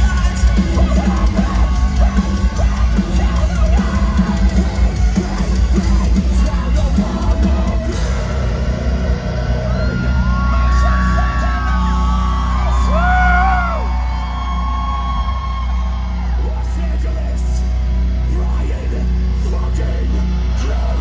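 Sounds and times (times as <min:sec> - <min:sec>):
metal band playing live: 0:00.0 - 0:21.0.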